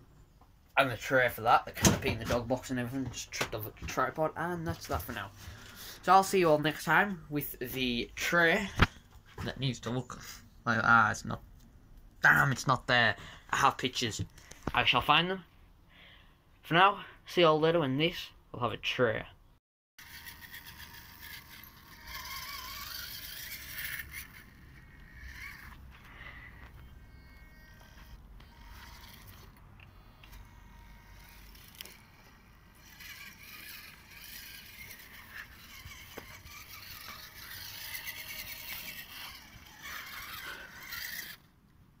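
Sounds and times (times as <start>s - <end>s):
electric motor whining: 20.0s - 41.5s.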